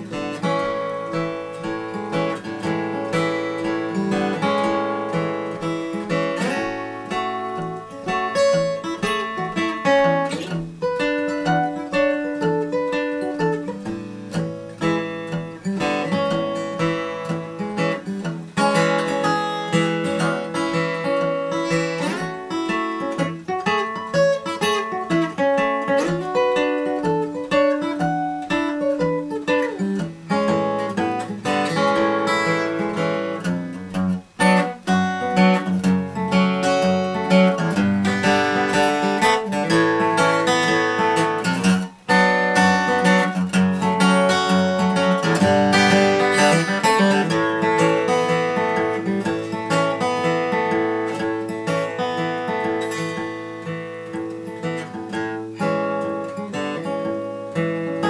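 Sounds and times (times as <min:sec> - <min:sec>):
fingerstyle acoustic guitar: 0:00.0 - 0:58.0.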